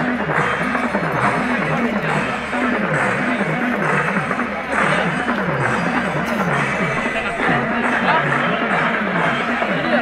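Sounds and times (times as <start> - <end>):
large outdoor crowd babble: 0.0 - 10.0.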